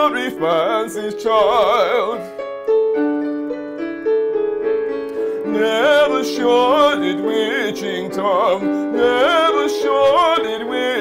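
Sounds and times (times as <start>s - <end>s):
digital piano accompaniment: 0.0s - 11.0s.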